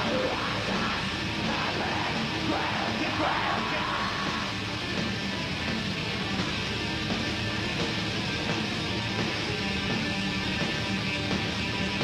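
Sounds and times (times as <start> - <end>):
harsh screamed vocals: 0.0 - 4.6
distorted electric guitars: 0.0 - 12.0
drums: 0.0 - 12.0.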